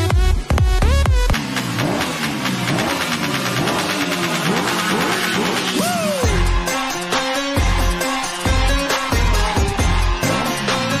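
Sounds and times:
buzzing engine-like sound: 0.2s - 5.8s.

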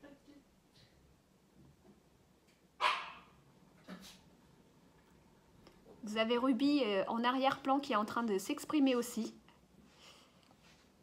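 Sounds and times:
dog barking: 2.8s - 3.4s.

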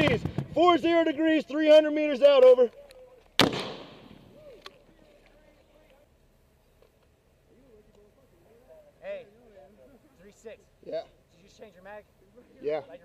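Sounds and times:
loud gunshot with echo: 3.4s - 4.3s
rifle firefight: 3.4s - 4.4s.

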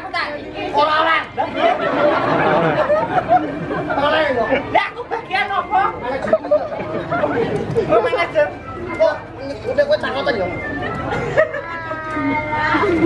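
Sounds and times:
voices talking: 0.0s - 13.0s.

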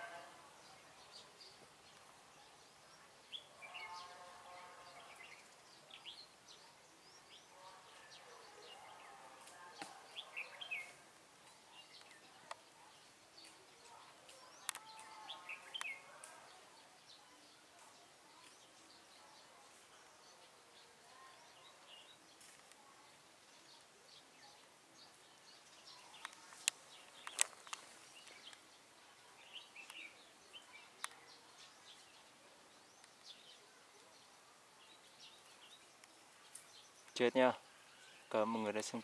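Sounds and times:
faint bird chirps: 0.0s - 39.0s
sharp clicks: 26.2s - 27.9s.

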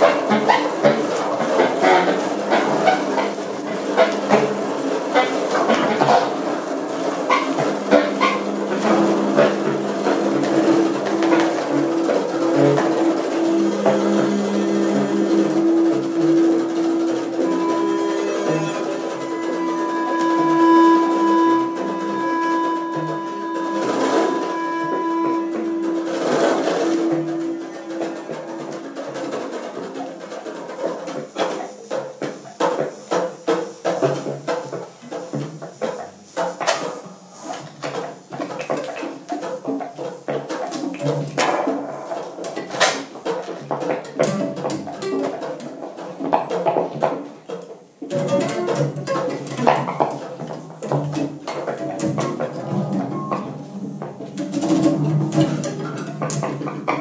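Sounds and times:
free improvised ensemble music: 0.0s - 57.0s
steady high pure tone: 2.9s - 29.5s.

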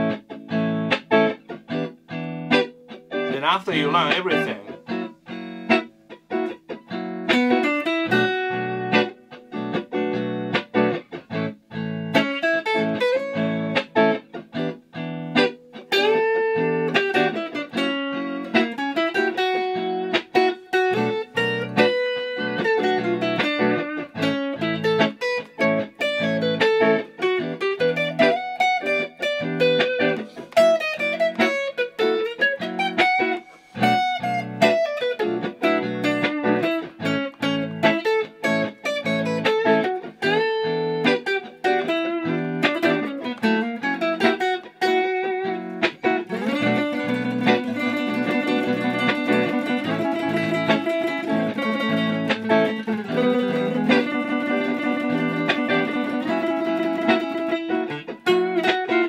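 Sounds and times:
clean electric guitar: 0.0s - 59.0s.

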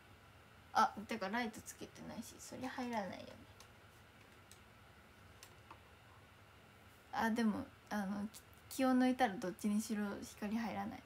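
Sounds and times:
woman speaking: 0.8s - 3.5s, 7.1s - 11.0s.

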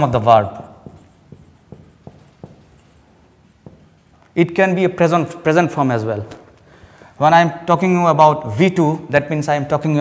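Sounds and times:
marker writing on whiteboard: 0.0s - 5.4s
marker taps: 0.6s - 4.4s.

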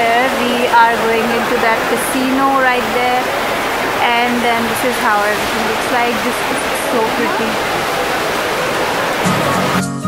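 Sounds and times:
indoor crowd hubbub: 0.0s - 10.0s.

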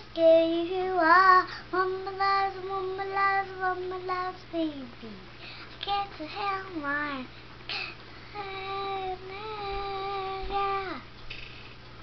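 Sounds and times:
girl singing unaccompanied: 0.0s - 11.2s.

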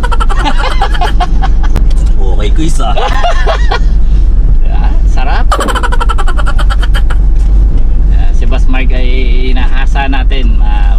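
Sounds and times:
men talking and laughing: 0.0s - 7.3s
road noise: 0.0s - 10.9s
truck engine rumble: 0.0s - 10.9s.

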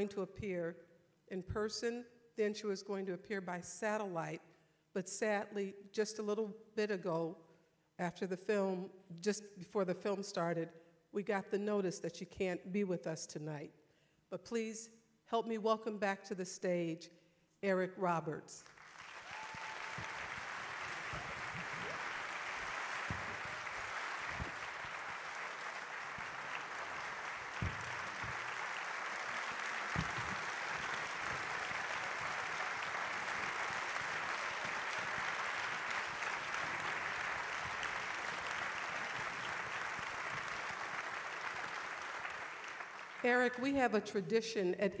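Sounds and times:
audience applauding: 18.7s - 43.2s.

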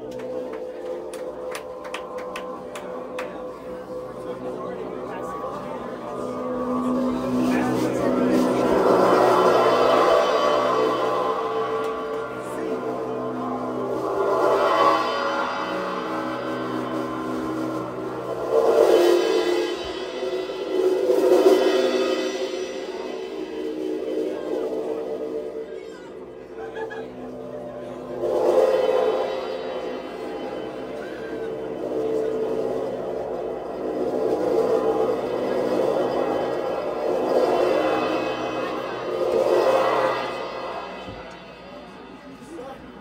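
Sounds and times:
live band playing ringing chords: 0.0s - 42.3s
drum and cymbal hits: 0.0s - 43.0s.

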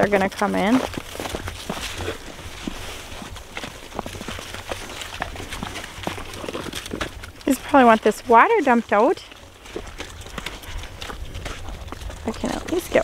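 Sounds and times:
footsteps in snow: 0.2s - 7.0s.

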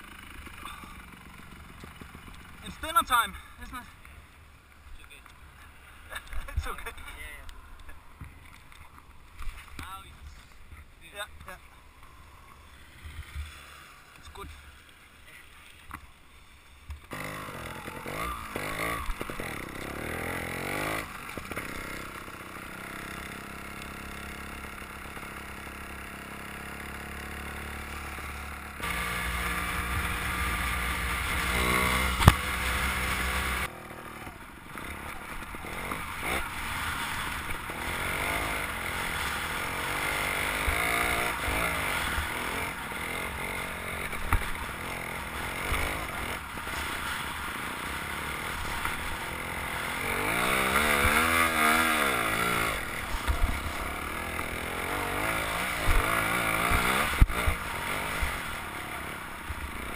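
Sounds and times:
motorcycle engine running: 0.0s - 4.4s, 16.9s - 59.9s.

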